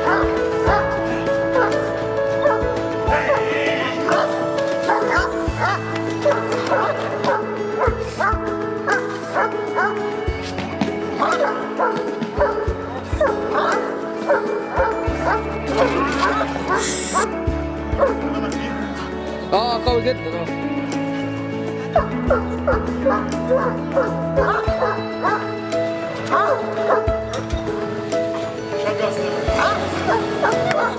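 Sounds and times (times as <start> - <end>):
background music: 0.0 - 30.9
dog barking aggressively: 4.1 - 9.9, 11.2 - 17.3, 22.0 - 25.4, 29.6 - 30.9.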